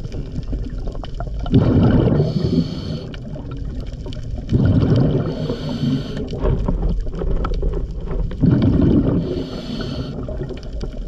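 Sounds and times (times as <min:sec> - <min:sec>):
exhaled bubbles rumbling underwater: 0:00.0 - 0:11.0
regulator inhale hiss: 0:02.1 - 0:03.2, 0:05.2 - 0:06.4, 0:09.2 - 0:10.3.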